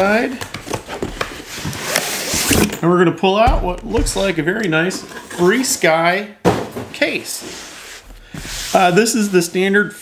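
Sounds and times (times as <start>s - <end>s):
cardboard scraping and rubbing: 7.4s - 10.0s.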